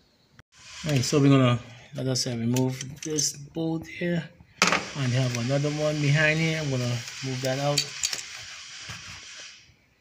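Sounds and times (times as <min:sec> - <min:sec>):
steady hiss: 0:00.0 - 0:02.5, 0:03.8 - 0:10.0
tools clicking on engine parts: 0:02.5 - 0:03.4, 0:07.0 - 0:08.8.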